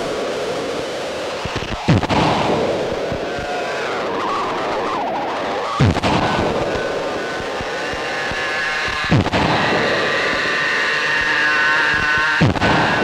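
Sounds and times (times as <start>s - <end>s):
noisy drone: 0.0s - 13.0s
sharp hit with falling swoop: 5.8s - 13.0s.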